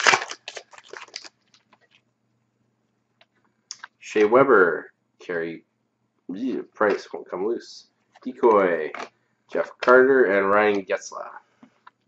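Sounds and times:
card pack wrapper crinkling and tearing: 0:00.0 - 0:01.9.

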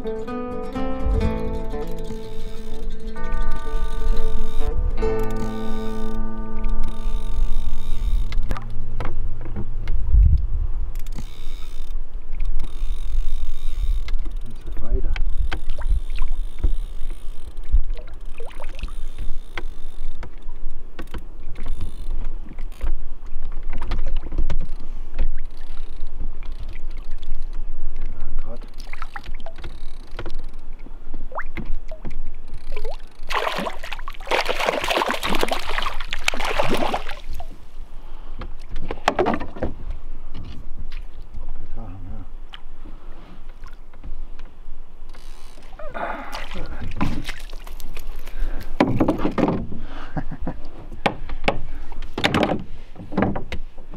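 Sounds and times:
low wind rumble: 0:00.8 - 0:18.1
fish splashing in water: 0:32.8 - 0:37.6, 0:46.0 - 0:48.4.

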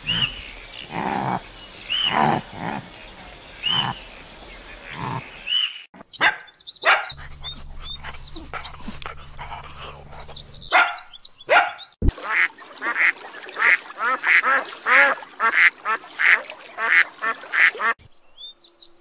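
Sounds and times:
geese calling: 0:00.0 - 0:09.6, 0:10.2 - 0:18.0
dog barking: 0:06.2 - 0:07.2, 0:10.7 - 0:12.0.

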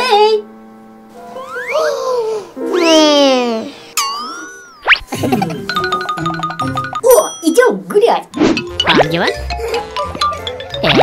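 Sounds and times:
cartoon boing: 0:08.4 - 0:09.3.

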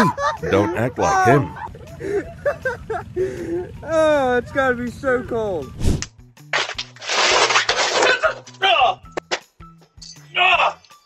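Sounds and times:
man crying out in pain: 0:00.0 - 0:03.8
background music: 0:00.0 - 0:11.0.

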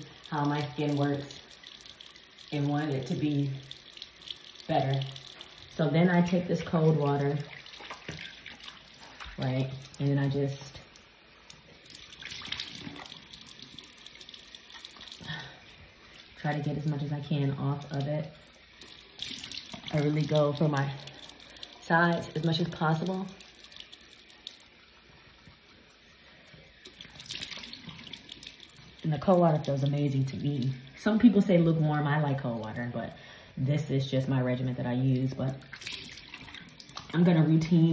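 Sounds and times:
tap water running into sink: 0:00.0 - 0:32.8, 0:34.6 - 0:37.9
water splashing on face: 0:06.5 - 0:11.0, 0:11.8 - 0:24.7, 0:26.8 - 0:30.8, 0:35.6 - 0:37.3.

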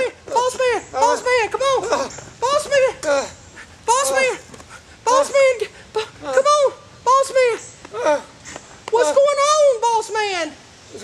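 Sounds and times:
man crying out in pain: 0:07.9 - 0:08.4.

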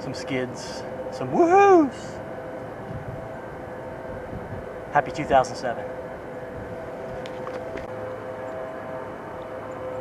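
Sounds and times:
faint steady tones: 0:00.0 - 0:10.0
low rumbling drone: 0:00.0 - 0:10.0.

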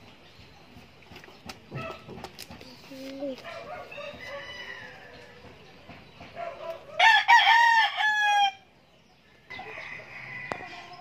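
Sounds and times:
rooster crowing: 0:03.7 - 0:05.4, 0:06.9 - 0:08.6, 0:09.5 - 0:11.0.

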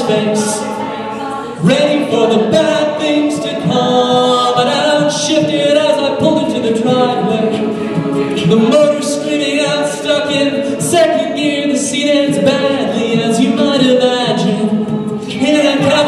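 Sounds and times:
backing vocal harmonies: 0:00.0 - 0:16.0
lead soloist singing: 0:00.0 - 0:16.0.

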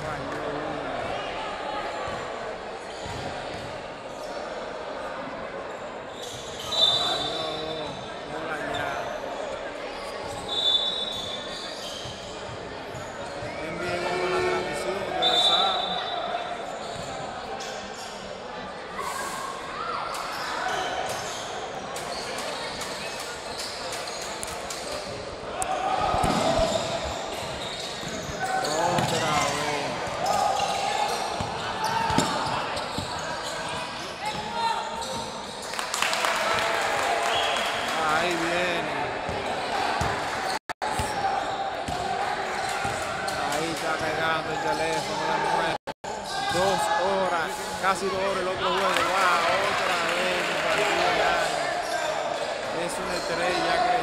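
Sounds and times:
echoing voices in hall: 0:00.0 - 0:54.0.

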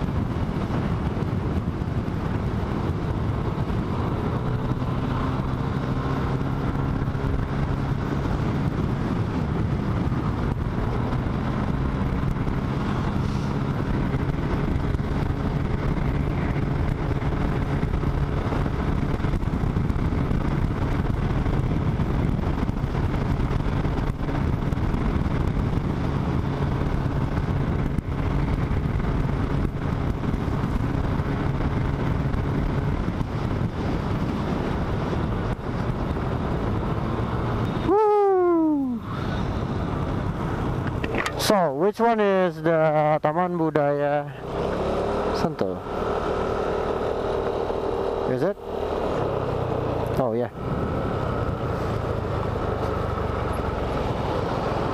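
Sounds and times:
scooter engine droning: 0:00.0 - 0:54.9
wind buffeting microphone: 0:00.0 - 0:54.9.

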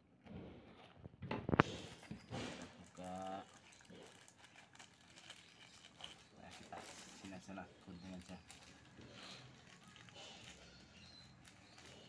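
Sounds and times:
plastic mailer bag crinkling and tearing: 0:02.4 - 0:12.0.

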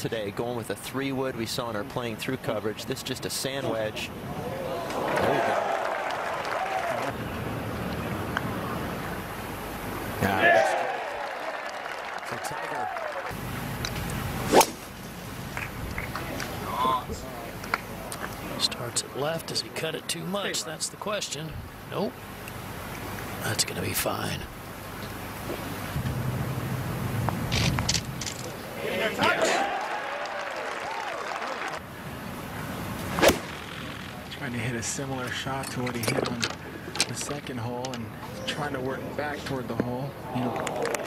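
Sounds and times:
steady outdoor hiss: 0:00.0 - 0:41.0
crowd cheering: 0:04.2 - 0:07.4, 0:10.2 - 0:13.4, 0:28.6 - 0:31.8.

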